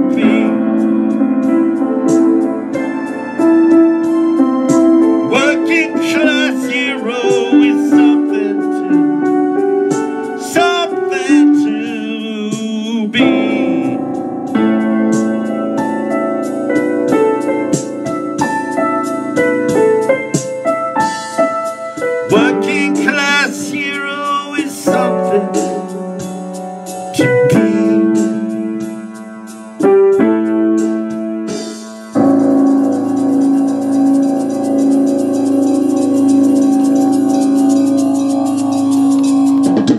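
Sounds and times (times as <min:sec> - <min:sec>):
man singing: 0:00.0 - 0:01.0, 0:05.2 - 0:09.0, 0:10.4 - 0:14.2, 0:22.3 - 0:26.1, 0:27.1 - 0:28.6
electric keyboard chords: 0:00.0 - 0:39.9.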